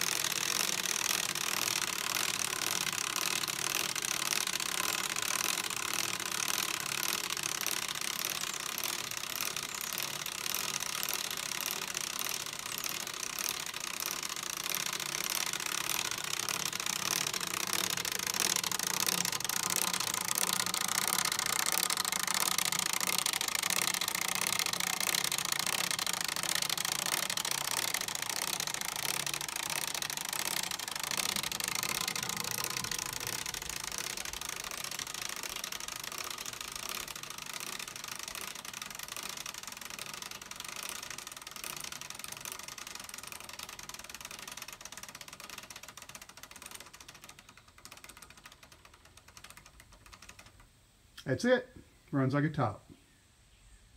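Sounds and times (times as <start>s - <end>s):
wooden model gears clattering: 0.0s - 50.8s.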